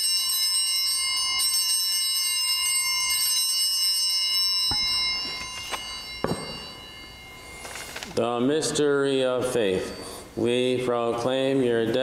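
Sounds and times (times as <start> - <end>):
altar bell ringing: 0.0 - 12.0.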